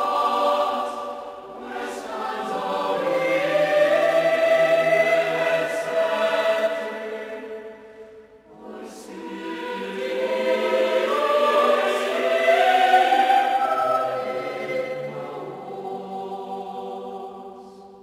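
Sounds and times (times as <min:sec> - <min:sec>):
choir singing sacred music: 0:00.0 - 0:18.0.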